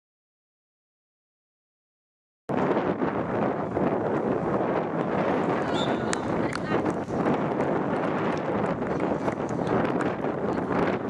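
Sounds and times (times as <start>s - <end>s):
wind buffeting microphone: 2.5s - 11.0s.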